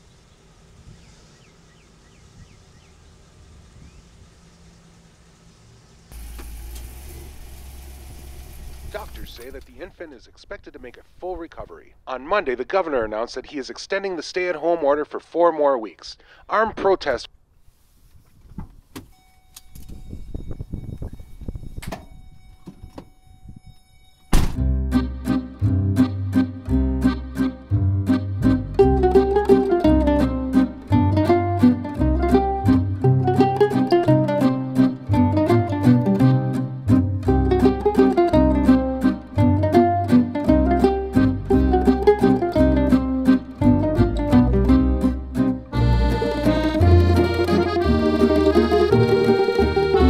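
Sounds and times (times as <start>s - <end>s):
bird chirps: 0.0s - 3.2s
truck engine humming: 0.0s - 10.3s, 24.7s - 50.0s
rustling: 17.5s - 19.0s
sharp thunk: 24.3s - 24.7s
loud plucked-string music: 24.6s - 50.0s.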